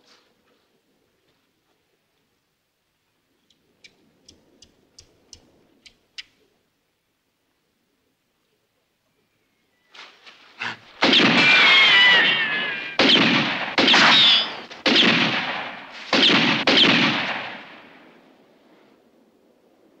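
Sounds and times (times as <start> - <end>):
faint clicks: 3.4 - 6.4
ricochet whine: 10.6 - 18.0
revolver shots echoing: 10.6 - 18.1.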